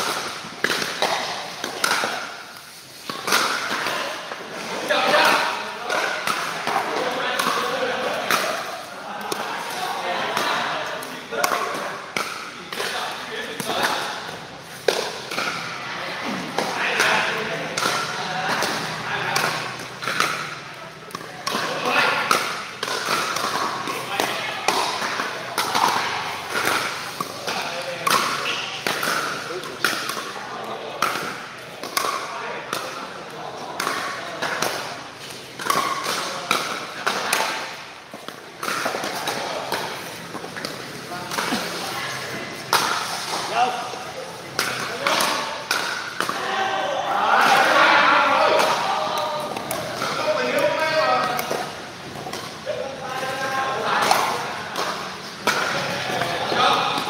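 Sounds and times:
people talking: 3.2s - 37.8s, 38.6s - 57.0s.

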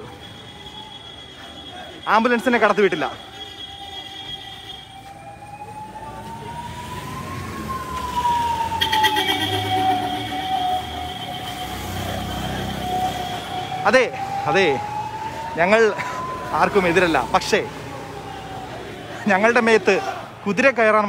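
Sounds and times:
ambulance siren wailing: 0.0s - 21.0s.

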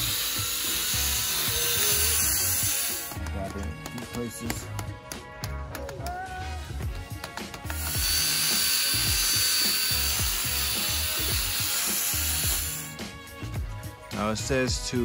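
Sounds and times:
cordless drill spinning buffing pad: 0.0s - 3.6s, 7.5s - 13.6s
background music with steady beat: 0.0s - 15.0s.

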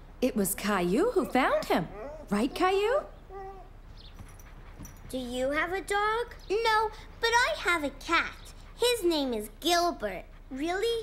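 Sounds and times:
cartoon dog whimpering: 1.9s - 2.3s, 3.3s - 3.8s.

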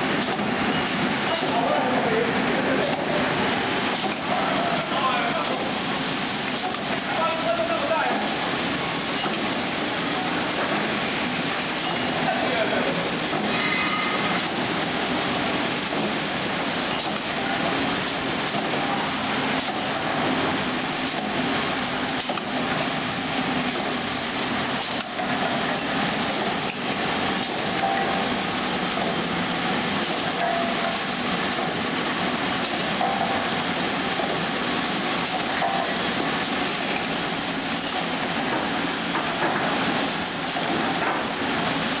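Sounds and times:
printing machine clattering: 0.0s - 42.0s.

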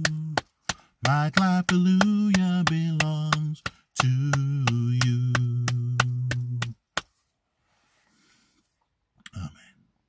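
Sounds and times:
man singing long notes: 0.0s - 0.4s, 1.0s - 6.8s
hands clapping steady beat: 0.0s - 7.1s.

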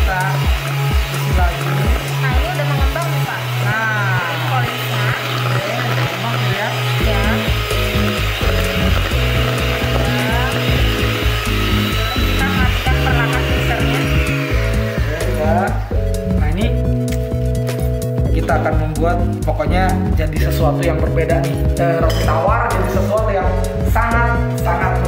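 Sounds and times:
electric hand mixer running: 0.0s - 17.6s
background music with steady beat: 0.0s - 25.0s.

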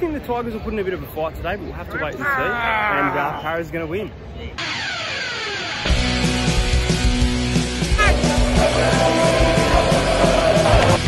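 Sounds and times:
noisy sweep with falling pitches: 4.6s - 6.6s
loud rock music: 5.3s - 11.0s.

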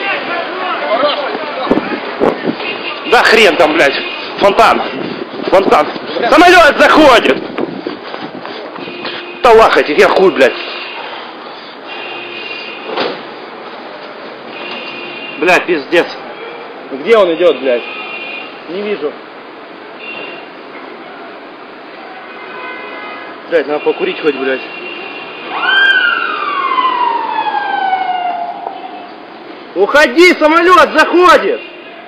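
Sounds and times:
siren wailing: 25.5s - 29.1s.

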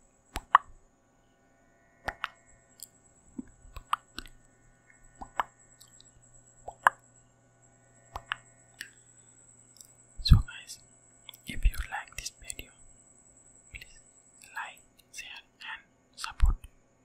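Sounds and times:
wet mouth clicks: 3.4s - 6.1s, 6.7s - 7.0s
person whispering: 10.2s - 12.8s, 13.8s - 16.7s.

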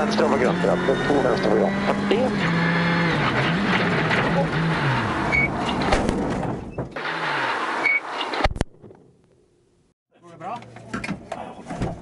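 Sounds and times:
rally car engine revving: 0.0s - 5.7s.

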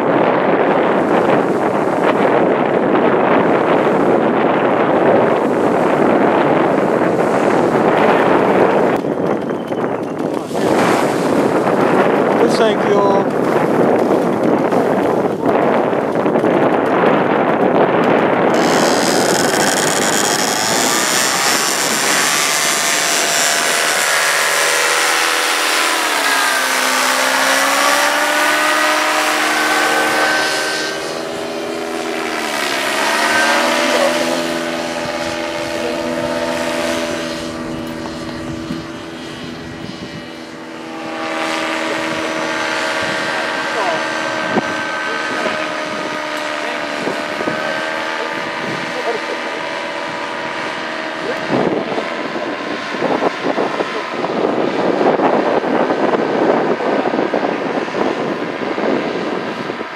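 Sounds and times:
paramotor engine and propeller roaring: 0.0s - 59.9s.

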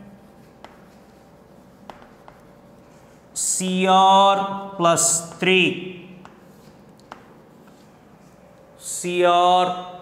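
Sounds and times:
chalk tapping: 0.1s - 3.2s, 5.0s - 8.4s
chalk scratching on chalkboard: 0.1s - 3.3s.

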